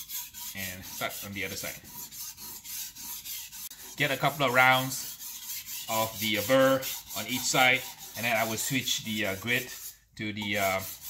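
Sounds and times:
knife scraping on whetstone: 0.0s - 11.0s.

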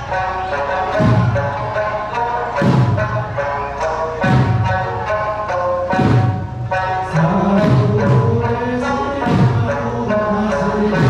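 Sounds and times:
person singing: 0.0s - 11.0s
sanshin playing: 0.0s - 11.0s
deep drum stroke: 0.8s - 3.5s, 5.8s - 8.6s.

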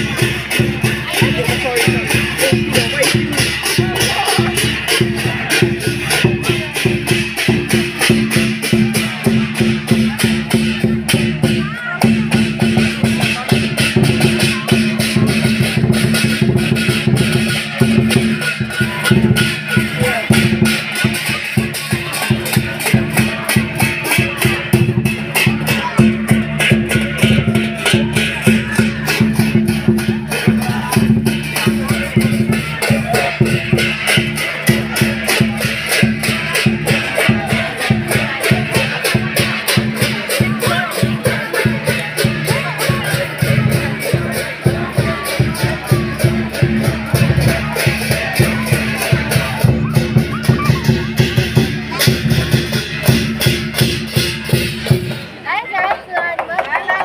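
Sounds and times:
barrel drum beating: 0.0s - 55.4s
cymbals clashing: 0.0s - 55.4s
crowd voices: 0.0s - 57.0s.

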